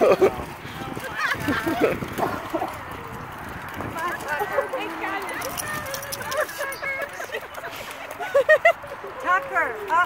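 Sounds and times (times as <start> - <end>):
people's voices in background: 0.0 - 10.0.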